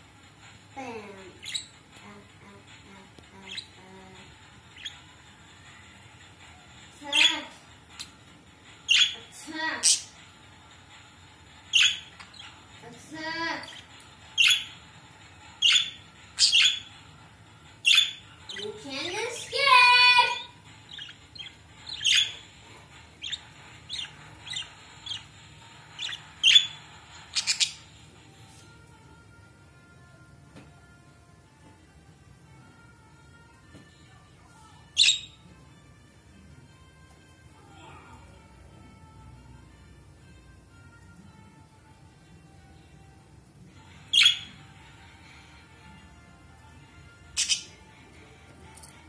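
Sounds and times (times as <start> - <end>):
budgerigars chirping: 11.7 - 12.6, 14.4 - 14.7, 15.6 - 16.9, 20.9 - 22.5, 23.2 - 27.8, 44.1 - 44.5, 47.4 - 47.7
budgerigar chirp: 15.6 - 16.9, 21.9 - 22.4, 26.0 - 27.8, 35.0 - 35.4, 44.1 - 44.5.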